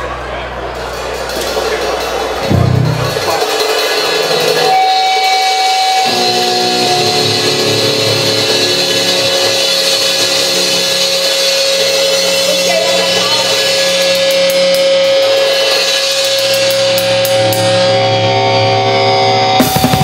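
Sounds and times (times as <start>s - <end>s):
drum kit: 0.7s - 20.0s
distorted electric guitar: 0.8s - 20.0s.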